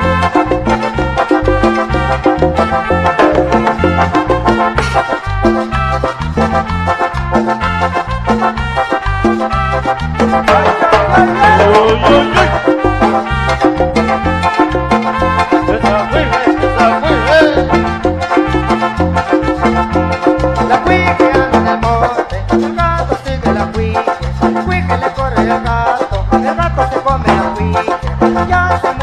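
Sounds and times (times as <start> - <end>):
accordion melody: 0.0 - 29.0
guitar and bass: 0.0 - 29.0.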